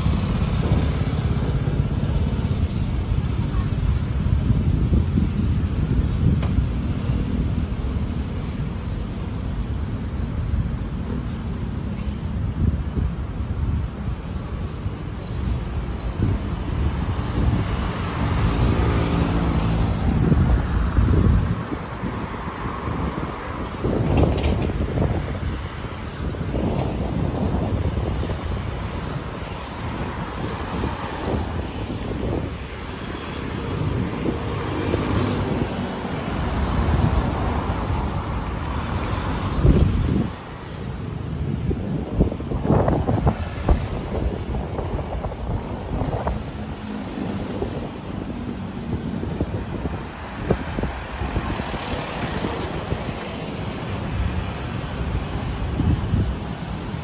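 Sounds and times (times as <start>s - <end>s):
cars passing on city street: 0.0s - 57.0s
wind rumbling on microphone: 0.0s - 57.0s.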